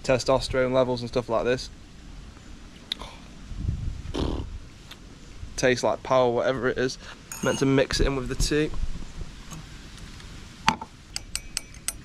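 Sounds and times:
utensil clinking tea cup: 7.3 - 7.8.

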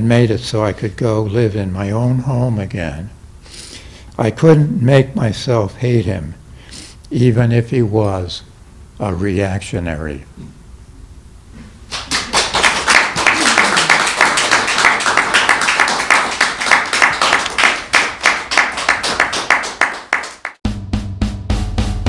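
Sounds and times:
dense applause: 11.9 - 20.6
music with bass and drum beat: 20.6 - 22.0.

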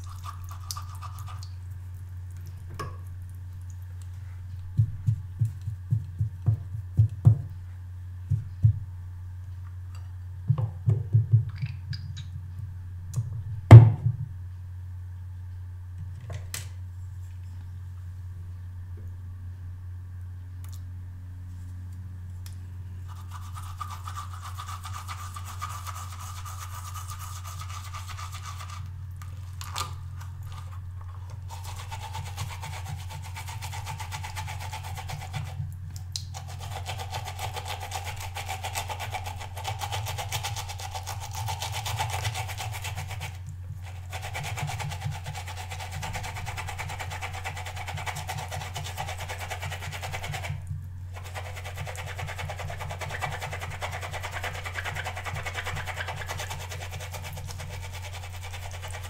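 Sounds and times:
steady low hum: 0.0 - 59.0
brush scrubbing on silicone pad: 23.1 - 28.9, 30.2 - 35.7, 36.4 - 50.6, 51.2 - 59.0.

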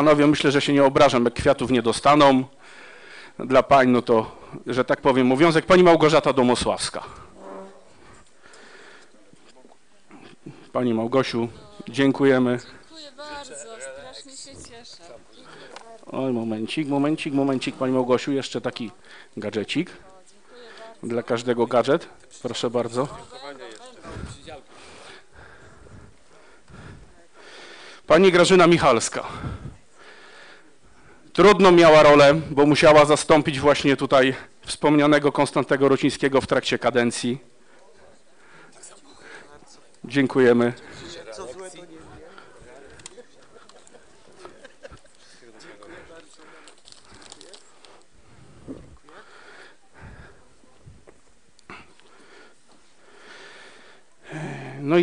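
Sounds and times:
faint hall room noise: 0.0 - 55.0.

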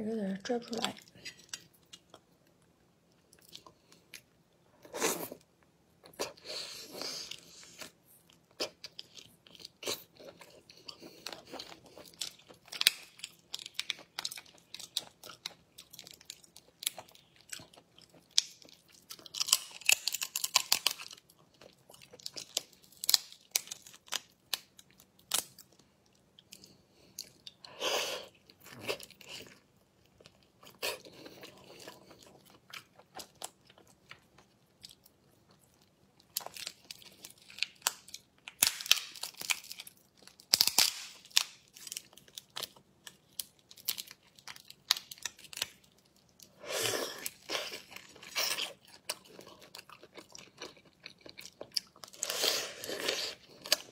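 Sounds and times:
shells cracking and peeling by hand: 18.3 - 21.2, 22.2 - 25.5, 36.4 - 45.9.

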